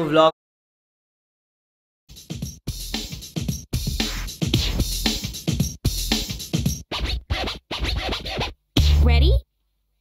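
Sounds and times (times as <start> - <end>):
electronic game music: 2.1 - 9.4
record scratching: 3.8 - 9.4.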